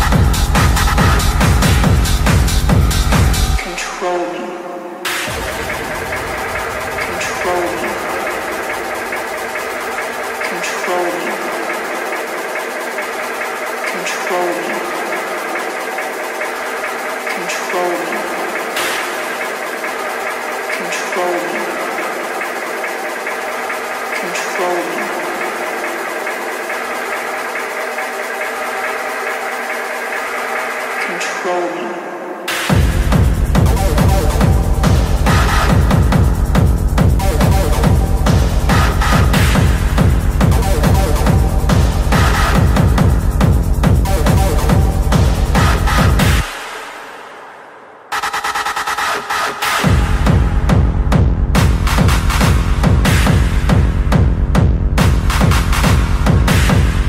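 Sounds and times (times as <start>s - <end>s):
hard techno: 0.0s - 57.0s.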